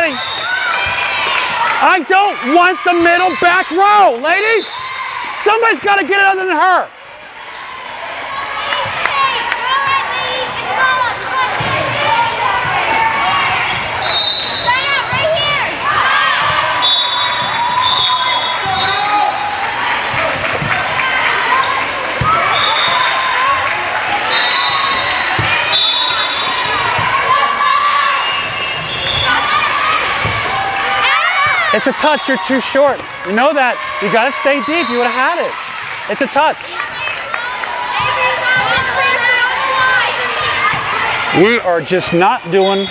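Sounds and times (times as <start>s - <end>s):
volleyball thumps: 24.9s - 25.7s
girls chanting and cheering: 36.7s - 41.3s.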